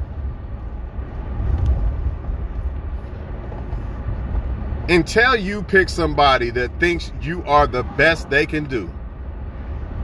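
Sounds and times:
vehicle rumble from inside cabin: 0.0 - 10.0.

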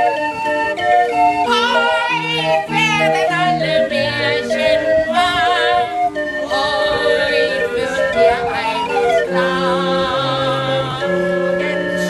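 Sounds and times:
barrel organ playing a tune: 0.0 - 12.0
voices singing with vibrato: 0.0 - 12.0.

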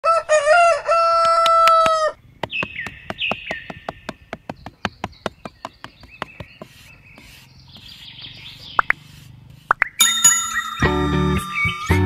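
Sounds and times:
rooster crowing: 0.0 - 2.2.

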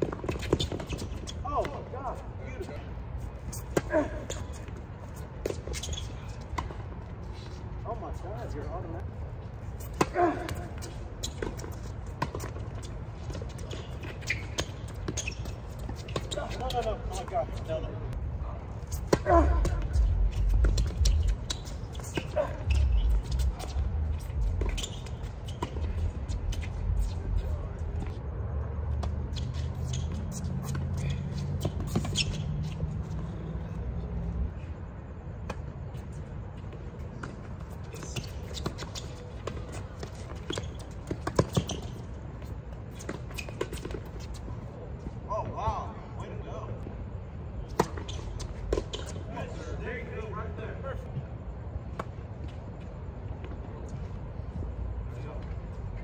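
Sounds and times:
ball bouncing on hard court: 9.9 - 17.4, 38.0 - 42.0.

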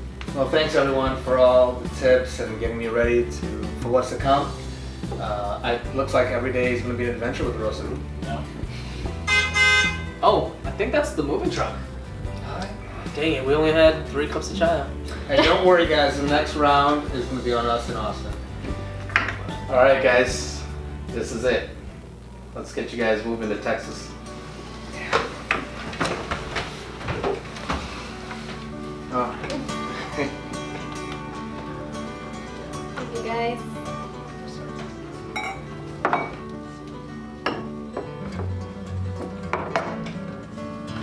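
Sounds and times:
background music: 0.0 - 41.0
vehicle horn honk: 9.2 - 10.2
wooden chairs scraping and knocking: 24.4 - 31.8.

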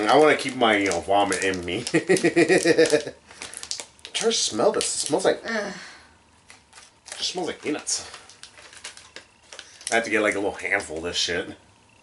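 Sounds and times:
plastic snack bag crinkling: 0.0 - 5.8, 6.4 - 11.3
person speaking: 7.1 - 8.3.

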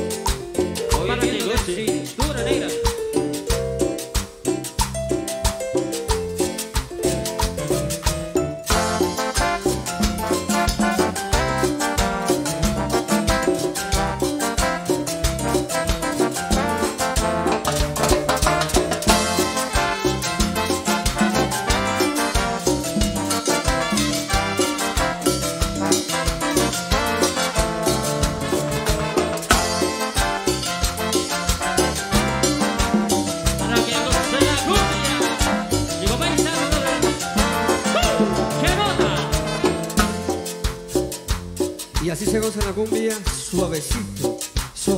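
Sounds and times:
live cumbia band playing: 0.0 - 44.9.

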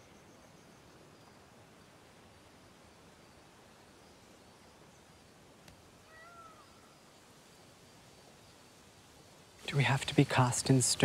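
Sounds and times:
faint outdoor hiss: 0.0 - 11.0
faint click: 5.6 - 5.8.

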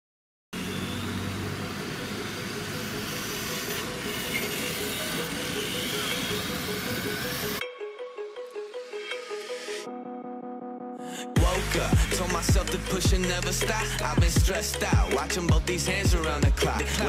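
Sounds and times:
loud rough vehicle noise: 0.6 - 7.6
music with pulsing beat: 11.4 - 17.0.

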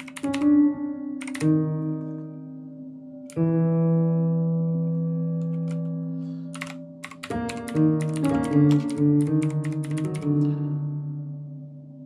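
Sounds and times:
computer keyboard keys clacking: 0.0 - 0.5, 1.2 - 1.5, 5.4 - 5.9, 6.5 - 10.4
software piano notes and chords: 0.0 - 12.0.

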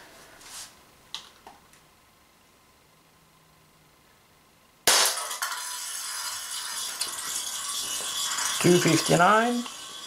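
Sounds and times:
air pistol shot hitting tin can: 4.9 - 6.3.

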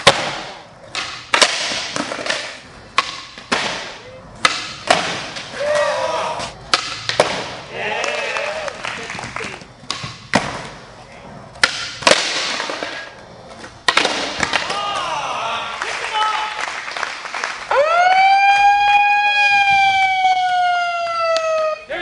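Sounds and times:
skateboard popping and landing: 0.0 - 5.9, 11.6 - 15.0.

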